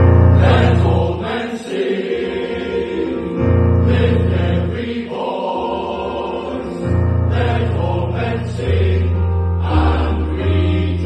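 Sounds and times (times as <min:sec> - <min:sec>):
male voice choir singing: 0:00.1 - 0:11.0.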